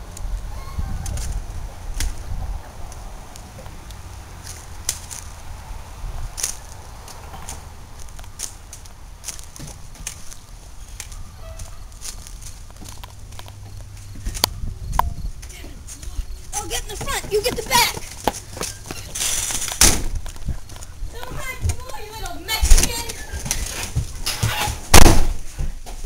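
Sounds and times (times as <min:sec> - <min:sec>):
footsteps on wooden stairs: 0:15.0 - 0:19.2, 0:22.7 - 0:24.9.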